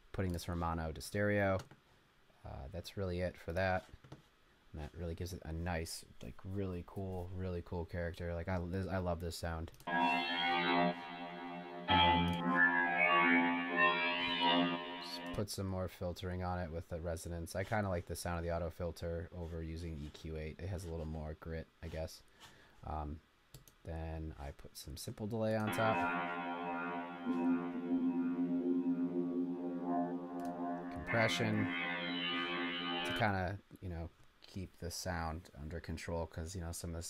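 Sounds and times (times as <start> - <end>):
distorted synth tones: 9.9 - 15.4, 25.6 - 33.4.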